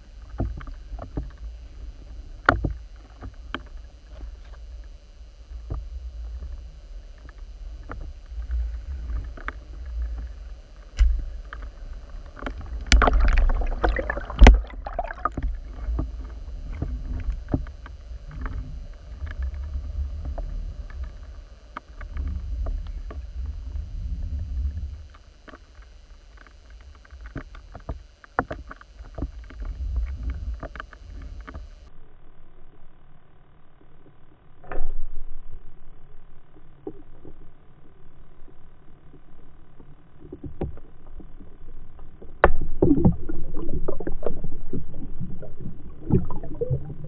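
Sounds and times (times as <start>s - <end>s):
small underwater clicks and knocks: 0.0s - 23.8s, 24.6s - 31.9s, 36.5s - 47.0s
underwater rumble of moving water: 0.0s - 47.0s.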